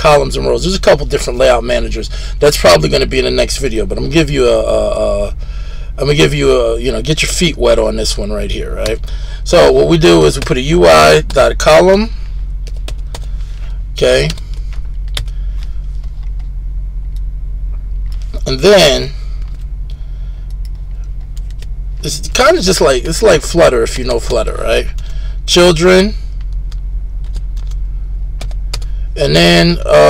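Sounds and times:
steady low hum: 0.0 - 30.0
computer keyboard keystrokes: 12.7 - 13.3, 15.1 - 15.3, 21.4 - 21.7, 26.4 - 27.8, 28.4 - 28.9
keyboard keys clicking: 26.4 - 27.8.

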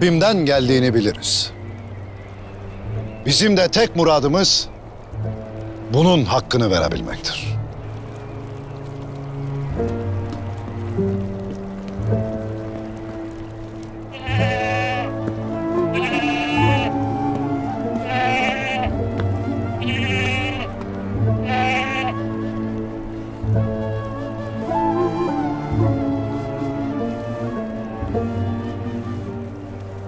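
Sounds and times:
slow background music: 0.0 - 30.0
sheep bleating: 14.1 - 15.2, 15.8 - 17.0, 18.0 - 19.0, 19.8 - 22.2.

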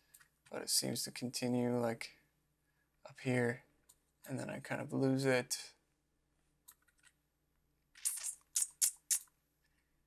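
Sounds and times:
computer mouse clicking: 6.7 - 7.2.

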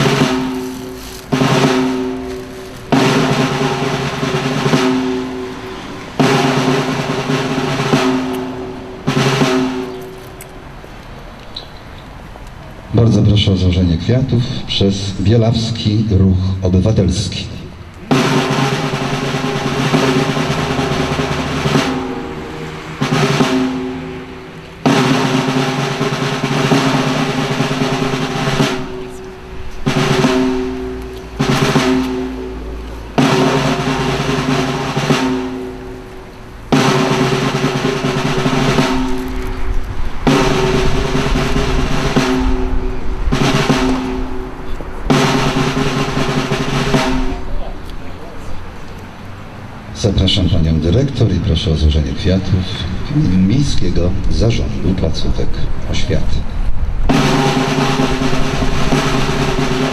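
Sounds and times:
snare drum roll: 0.0 - 10.2, 17.1 - 47.8, 57.1 - 59.9.

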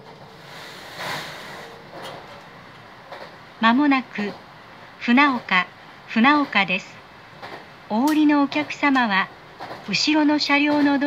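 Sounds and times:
train car rumble and hiss: 0.0 - 11.0.

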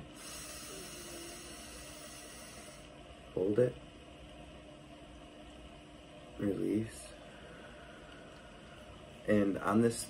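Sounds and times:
person breathing in deeply: 7.2 - 9.0.

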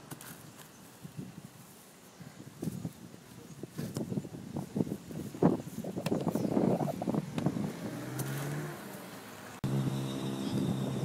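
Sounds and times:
motor vehicle engine running: 6.8 - 11.0.

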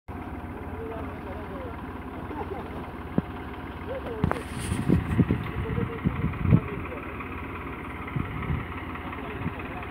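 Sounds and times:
diesel engine idling: 0.1 - 9.9
faint voices: 8.2 - 9.9.

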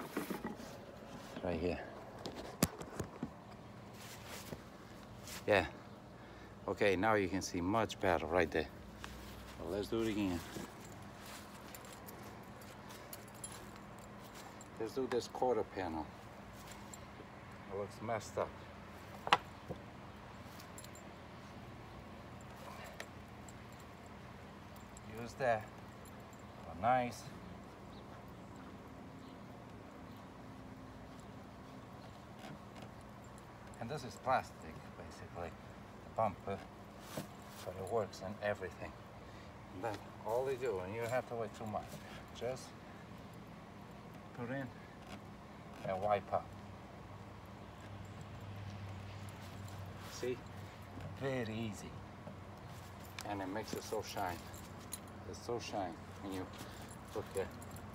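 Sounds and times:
low outdoor background: 0.0 - 57.9.

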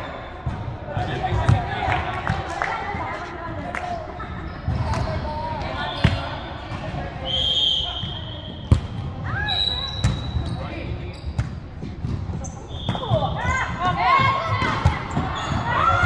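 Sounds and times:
players' voices: 0.0 - 16.0
sneakers squeaking on floor: 4.2 - 16.0.

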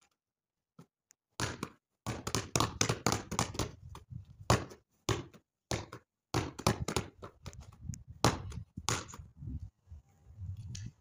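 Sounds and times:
basketball bouncing on tiles: 1.4 - 3.8, 4.5 - 7.5.

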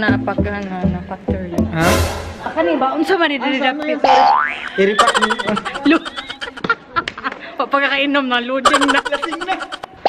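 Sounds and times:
woman making playful vocal sounds: 5.0 - 6.6, 8.7 - 9.9.

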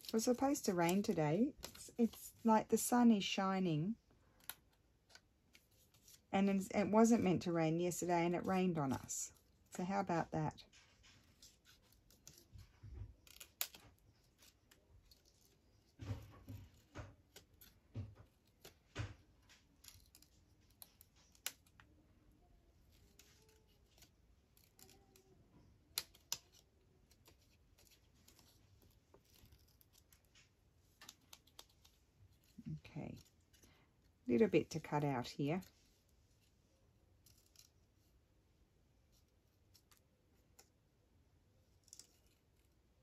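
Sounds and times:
scissors snipping paper: 0.0 - 2.5, 10.1 - 22.0, 22.8 - 33.6.

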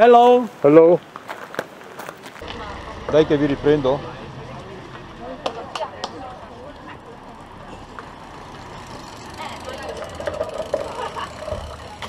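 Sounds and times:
tyres rolling: 0.0 - 12.0.

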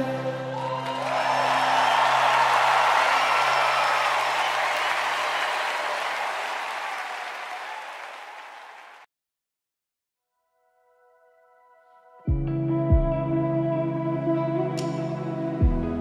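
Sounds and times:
crowd applauding and cheering: 0.0 - 9.1.

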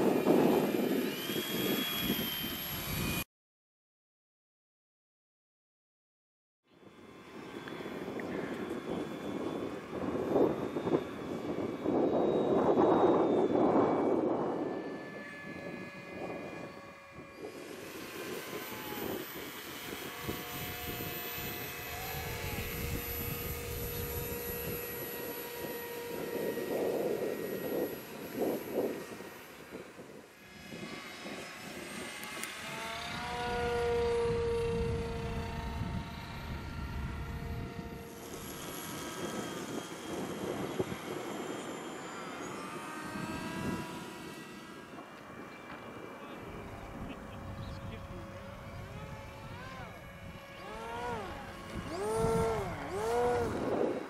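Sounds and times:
model airplane motors and propellers: 0.0 - 3.2, 6.7 - 54.0.

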